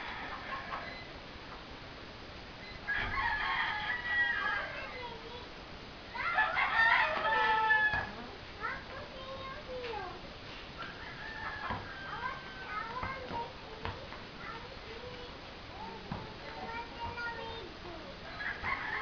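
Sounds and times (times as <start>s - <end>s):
rooster crowing: 0.0s - 1.0s, 2.8s - 5.0s, 6.2s - 8.2s, 10.8s - 12.9s, 18.3s - 19.0s.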